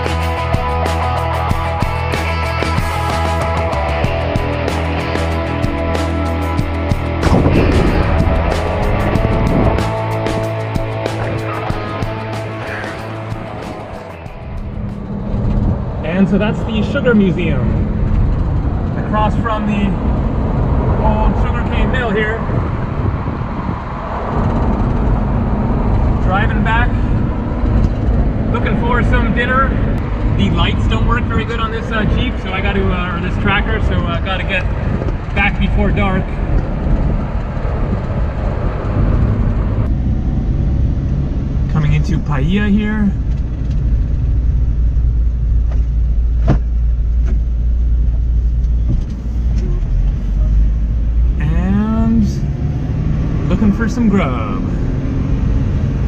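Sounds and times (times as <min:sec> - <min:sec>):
faint engine hum: 0:00.0 - 0:56.0
road noise inside car: 0:00.0 - 0:56.0.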